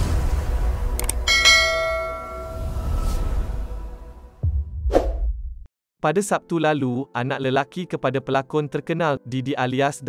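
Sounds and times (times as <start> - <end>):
bright bell chime: 1.3 - 3.0.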